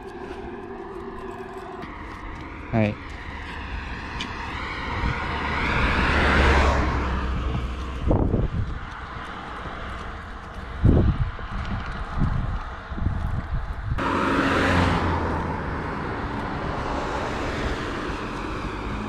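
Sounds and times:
car passing: 0.0 - 19.0
low gusts or bumps: 0.0 - 19.0
wind rumble on microphone: 0.0 - 19.0.

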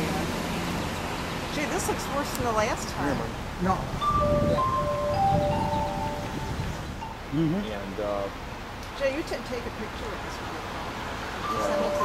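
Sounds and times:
low rumble of outdoor noise: 0.0 - 12.0
wind chimes ringing: 4.0 - 7.2, 11.4 - 12.0.

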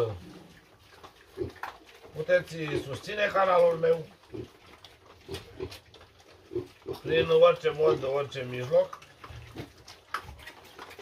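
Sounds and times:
piglets grunting: 1.2 - 11.0.

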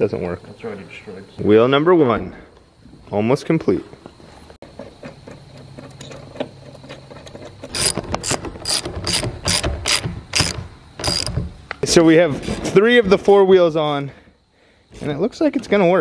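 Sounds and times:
ratchet wrench clicking: 7.7 - 11.4.

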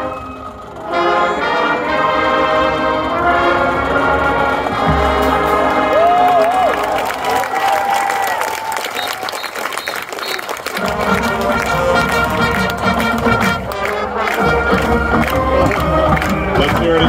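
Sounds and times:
marching band brass and drums: 0.0 - 7.6, 8.9 - 17.0
crowd cheering and applause: 4.2 - 17.0.

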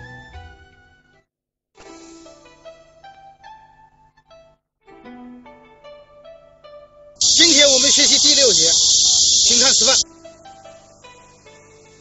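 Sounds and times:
loud steady hiss: 7.2 - 10.0.

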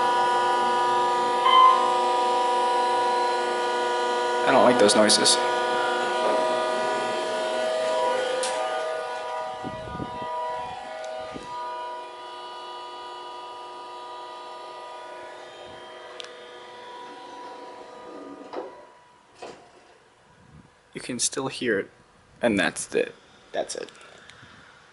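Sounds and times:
elevator machinery whine: 0.0 - 20.3.

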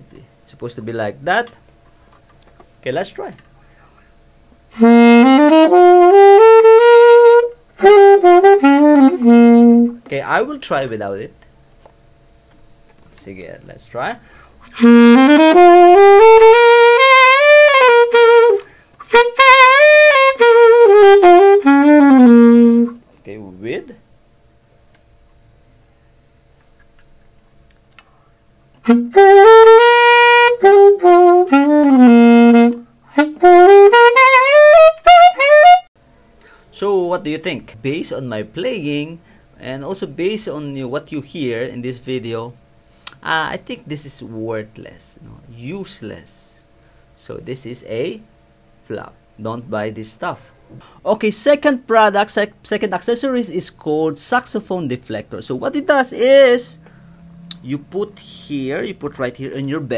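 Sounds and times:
muted saxophone phrases: 4.7 - 11.2, 13.8 - 24.0, 28.8 - 35.9, 51.4 - 59.9.

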